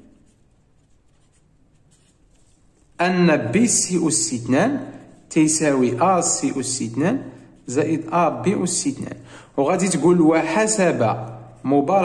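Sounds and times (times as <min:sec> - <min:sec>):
pen scratching on paper: 0:00.0 - 0:12.0.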